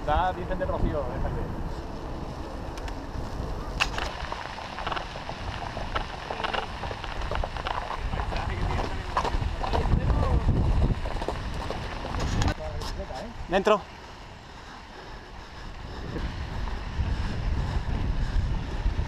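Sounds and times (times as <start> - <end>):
wind rumble on microphone: 0.0 - 19.0
horse hooves clopping: 1.8 - 14.9
bike rattling clicks: 2.6 - 9.4.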